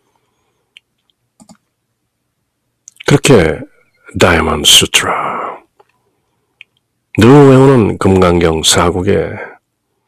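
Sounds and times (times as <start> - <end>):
faint clicks: 0.7 - 1.7, 6.6 - 6.9.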